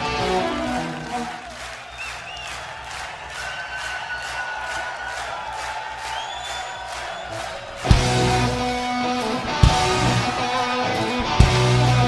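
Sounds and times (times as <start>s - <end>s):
rock band with electric guitars: 0.0s - 1.5s, 7.3s - 12.0s
crowd cheering and whistling: 0.0s - 12.0s
fast rock drum beat: 7.8s - 12.0s.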